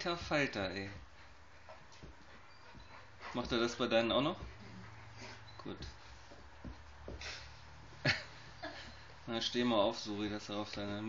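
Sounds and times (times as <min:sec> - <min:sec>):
dogs play-wrestling: 0:00.2 - 0:09.3
puppy whining softly: 0:02.2 - 0:03.5.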